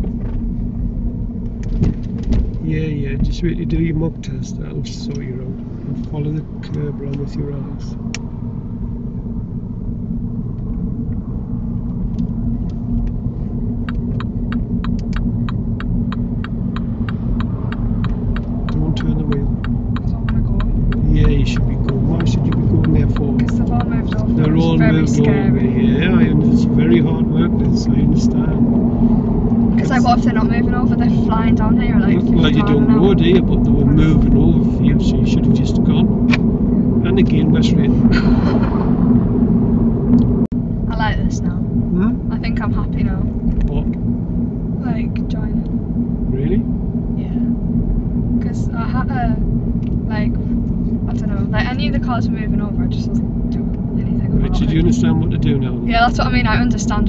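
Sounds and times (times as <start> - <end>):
car engine and tyre rumble: 0.0 - 57.0
turn indicator clicking: 13.8 - 24.4.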